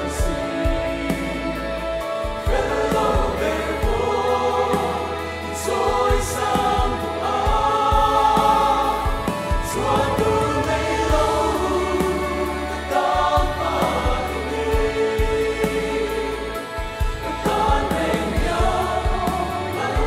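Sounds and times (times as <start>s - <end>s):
mixed choir singing a hymn: 0.0s - 20.0s.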